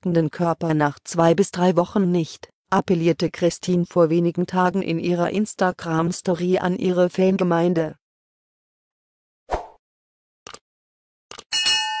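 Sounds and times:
bright bell chime: 11.5s - 12.0s.

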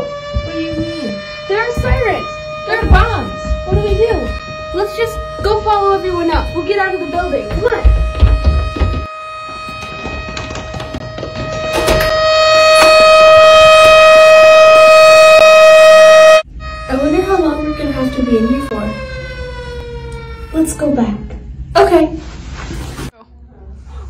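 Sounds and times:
siren tone falling in pitch: 0.0s - 20.8s
air-raid siren wailing: 0.0s - 22.0s.

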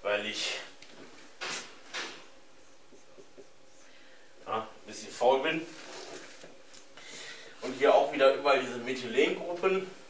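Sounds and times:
marker writing on whiteboard: 1.4s - 3.9s.

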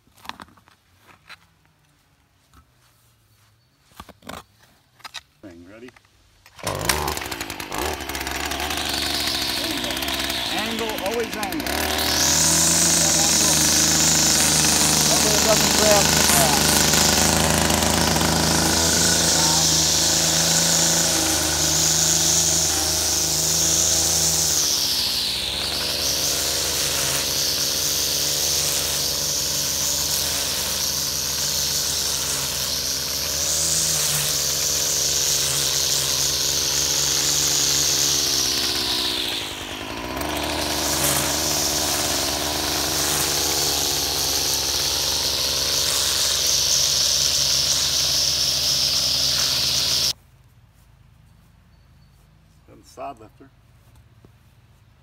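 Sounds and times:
blade cutting turf: 3.8s - 50.2s
lawn edger engine running: 6.5s - 50.2s.

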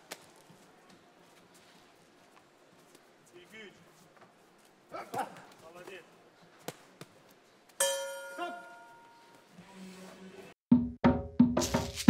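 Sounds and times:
boxing ring bell: 7.8s - 9.4s
music with drums: 10.7s - 12.0s.

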